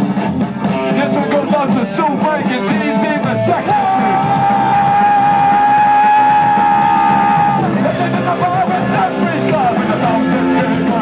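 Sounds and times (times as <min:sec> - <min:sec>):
punk rock band playing loudly: 0:00.0 - 0:11.0.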